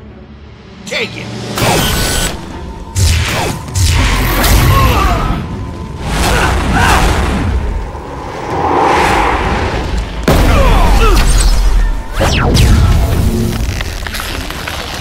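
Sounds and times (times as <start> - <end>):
background music: 0.0 - 8.6
deep rumble: 5.4 - 11.0
fire whooshes: 5.6 - 11.7
booms: 6.0 - 13.3.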